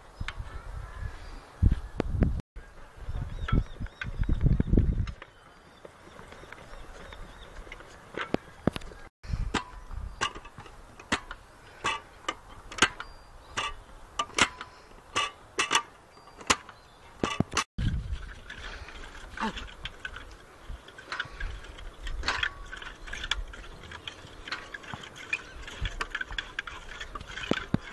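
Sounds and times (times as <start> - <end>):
gym machine metallic clicks: 9.5 - 17.7, 20.9 - 27.9.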